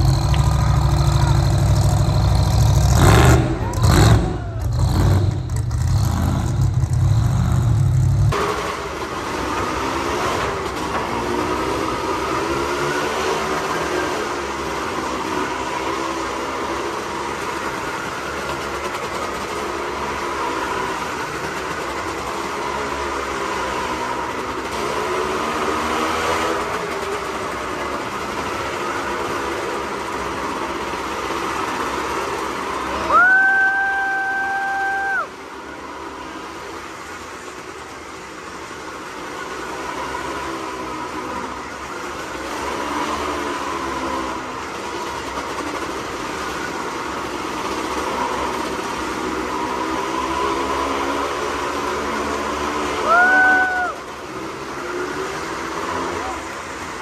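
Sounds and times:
pickup engine revving loudly: 0.0 - 16.4
motorcycles circling a wall: 0.0 - 57.0.

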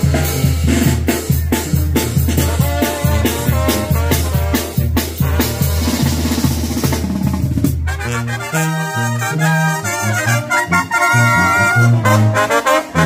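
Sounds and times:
banda music: 0.0 - 13.0
drums: 0.0 - 13.0
sousaphone bass line: 9.3 - 12.2.

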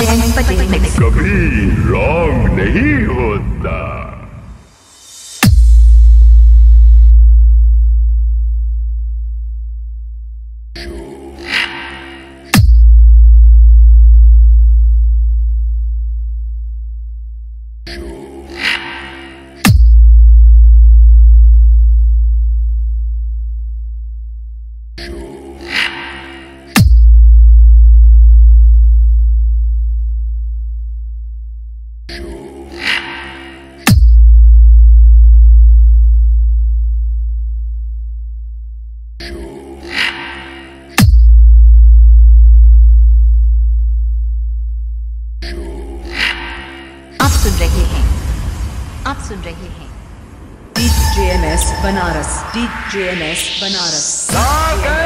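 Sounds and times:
electronic dance beat: 0.0 - 1.8, 50.8 - 55.0
deep sub-bass tone: 0.0 - 4.6, 5.4 - 11.0, 12.5 - 18.8, 19.6 - 25.2, 26.8 - 32.4, 33.9 - 40.0, 41.0 - 55.0.

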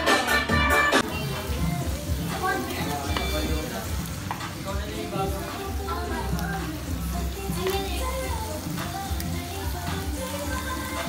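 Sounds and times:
background music: 0.0 - 11.0
meat sizzling on a griddle pan: 1.0 - 11.0.

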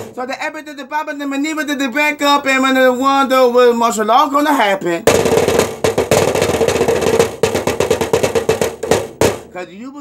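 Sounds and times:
fast drum roll: 0.0 - 0.3, 5.0 - 9.6.

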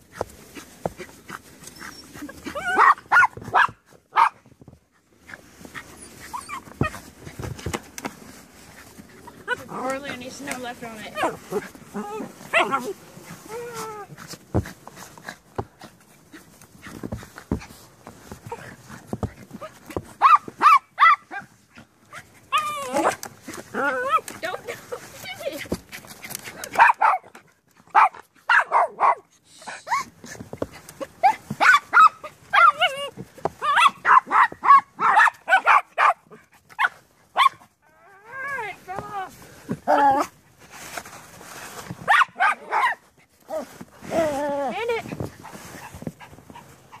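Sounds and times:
small dogs yapping: 0.2 - 4.5, 5.3 - 7.7, 8.7 - 17.8, 18.4 - 40.4, 42.0 - 47.0.

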